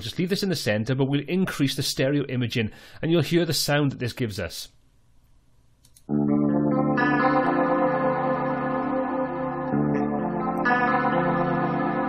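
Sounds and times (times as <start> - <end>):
guitar playing held chords: 6.1 - 12.0.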